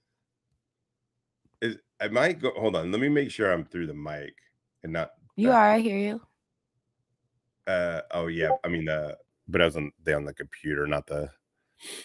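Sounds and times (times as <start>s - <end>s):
short spoken syllable: 1.6s - 4.3s, 4.9s - 5.6s, 7.7s - 11.3s.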